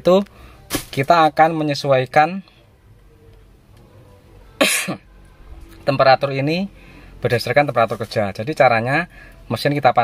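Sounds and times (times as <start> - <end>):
person coughing: 4.6 - 5.0.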